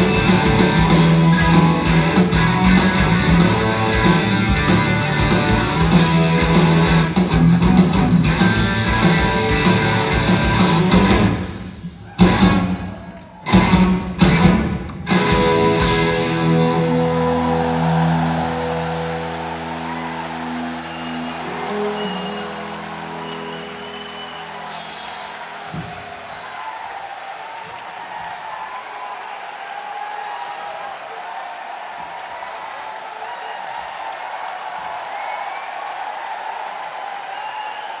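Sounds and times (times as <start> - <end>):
audience applause: 0.0 - 14.5, 15.1 - 38.0
rock band final chord: 13.6 - 26.0.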